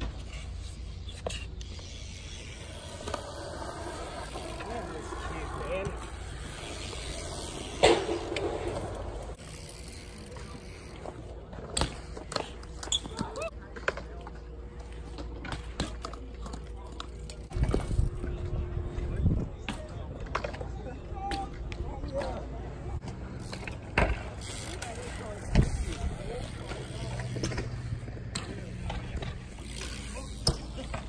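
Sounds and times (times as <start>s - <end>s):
bike wheels rolling on concrete: 0.0s - 31.0s
people talking: 3.7s - 6.2s, 12.2s - 23.7s, 24.4s - 27.7s.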